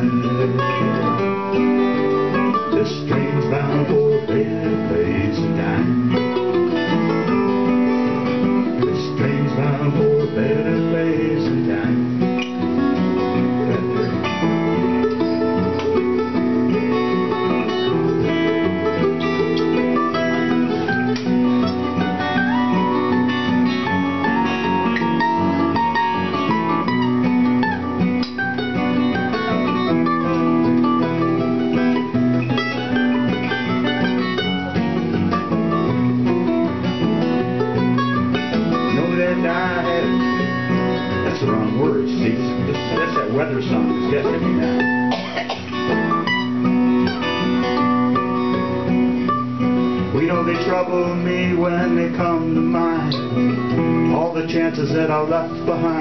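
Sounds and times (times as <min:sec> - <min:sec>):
mandolin melody: 0:00.0 - 0:56.0
strummed acoustic guitars: 0:00.0 - 0:56.0.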